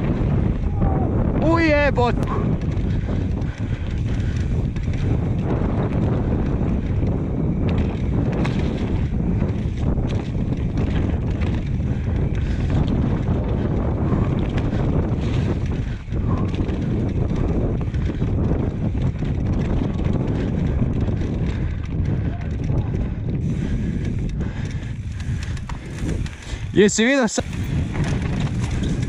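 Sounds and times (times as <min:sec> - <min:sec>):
tyres rumbling on dirt: 0:00.0 - 0:29.0
wind buffeting microphone: 0:00.0 - 0:29.0
bike knocks and rattles: 0:02.3 - 0:29.0.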